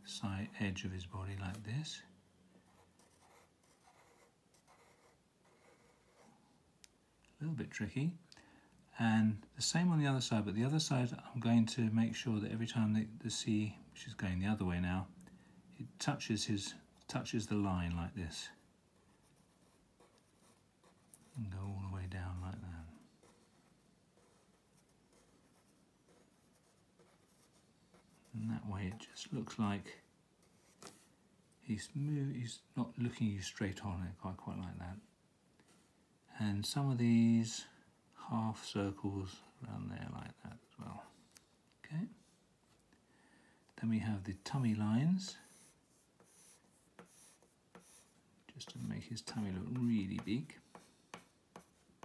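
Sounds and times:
pencil scratching on paper: 0:02.6 - 0:06.4, 0:19.0 - 0:29.6, 0:44.3 - 0:52.0.

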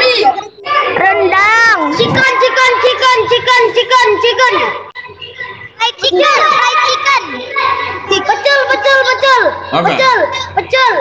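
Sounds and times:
children speaking and calling out: 0:00.0 - 0:11.0.

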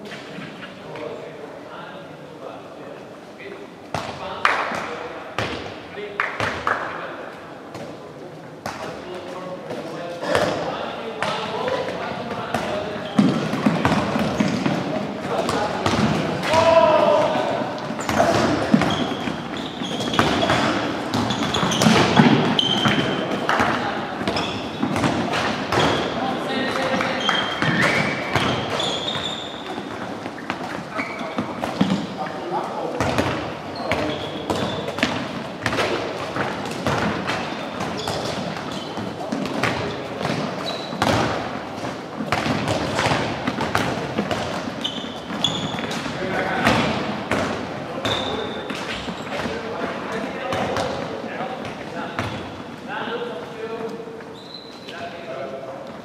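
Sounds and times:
balls bouncing on wooden floor: 0:11.2 - 0:52.8
shoe squeaks: 0:12.7 - 0:13.3, 0:17.9 - 0:23.4, 0:24.3 - 0:24.9, 0:26.8 - 0:32.2, 0:33.6 - 0:35.0, 0:37.4 - 0:39.2, 0:40.5 - 0:41.1, 0:44.8 - 0:46.3, 0:48.0 - 0:49.7, 0:54.2 - 0:55.3.

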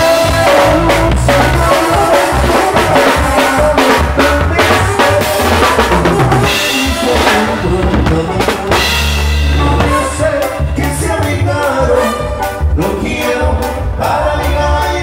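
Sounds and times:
drum kit: 0:00.0 - 0:15.0
horn lines: 0:00.0 - 0:15.0
keyboard: 0:00.0 - 0:15.0.

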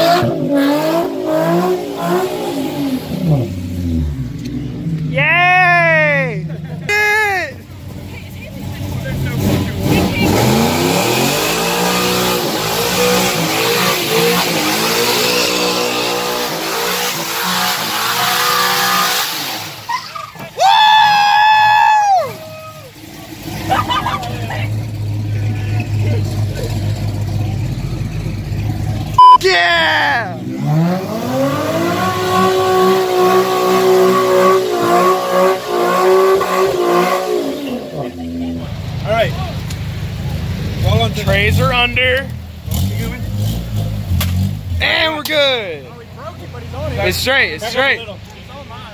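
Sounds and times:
car engine revving: 0:00.0 - 0:05.1, 0:07.6 - 0:19.9, 0:23.0 - 0:47.9
high-pitched shout: 0:05.2 - 0:07.6, 0:29.4 - 0:30.4.

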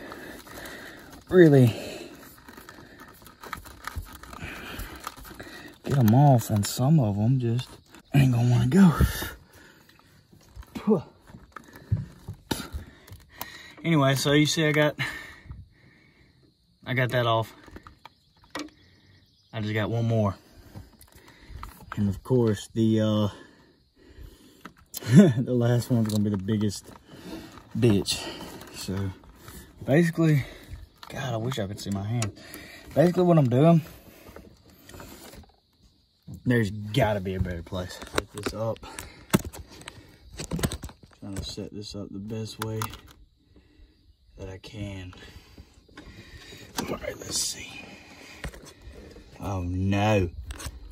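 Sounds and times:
clicks of hose fittings: 0:17.6 - 0:18.8, 0:25.9 - 0:29.7, 0:37.7 - 0:41.5.

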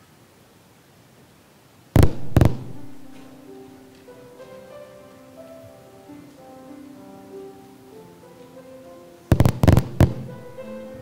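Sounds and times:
rapid loud pops: 0:02.0 - 0:03.4, 0:09.3 - 0:10.6
soft piano accompaniment: 0:02.0 - 0:11.0.

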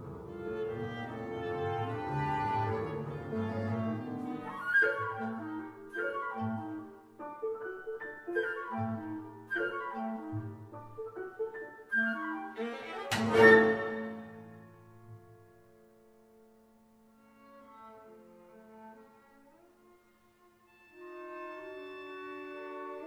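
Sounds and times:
double bass: 0:00.0 - 0:04.6
strings plucking pizzicato: 0:00.0 - 0:06.6, 0:12.5 - 0:14.6
clarinet: 0:00.0 - 0:15.6, 0:17.2 - 0:23.0
piano: 0:00.0 - 0:23.0
viola: 0:00.0 - 0:23.0
flute: 0:01.2 - 0:14.7, 0:20.7 - 0:23.0.

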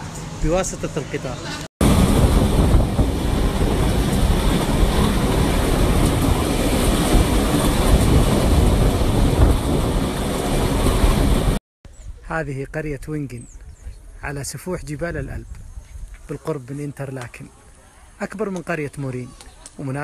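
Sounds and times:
train rumbling along track: 0:00.0 - 0:11.6
air rushing past: 0:01.8 - 0:11.6.

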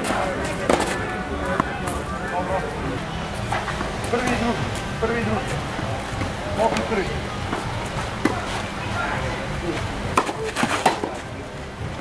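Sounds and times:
tennis balls struck by rackets: 0:00.0 - 0:02.1, 0:03.4 - 0:11.4.

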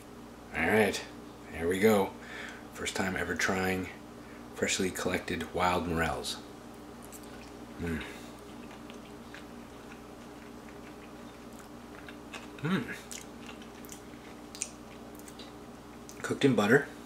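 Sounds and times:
steady low hum: 0:00.0 - 0:17.0
soft chewing clicks: 0:06.7 - 0:16.4
person humming mm: 0:07.8 - 0:08.2, 0:12.6 - 0:13.1.

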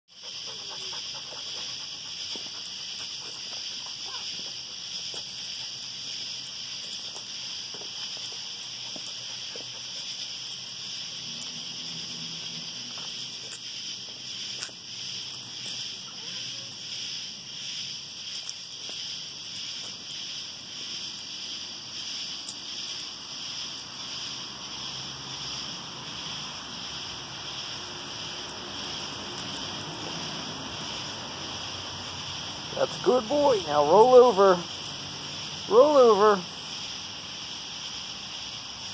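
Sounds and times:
night insects chorus: 0:00.1 - 0:38.9.

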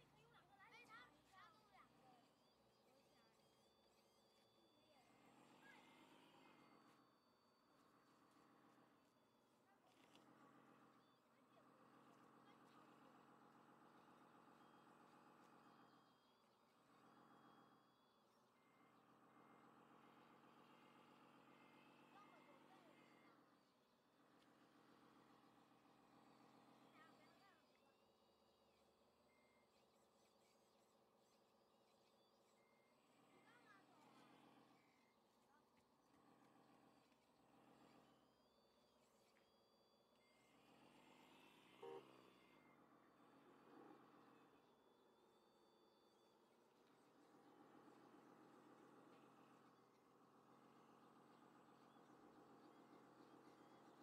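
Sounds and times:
engine-like hum: 0:00.0 - 0:54.0
reversing beeper: 0:00.0 - 0:54.0.

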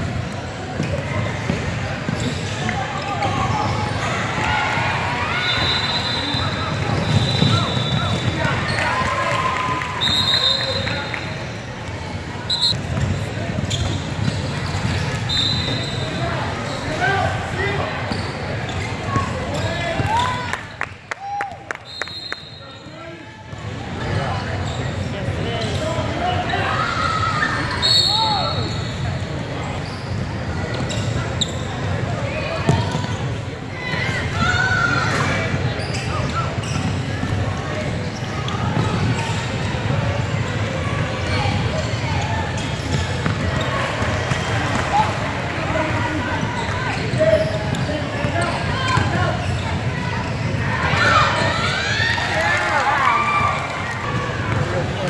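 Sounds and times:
voices echoing in a hall: 0:00.0 - 0:55.0.

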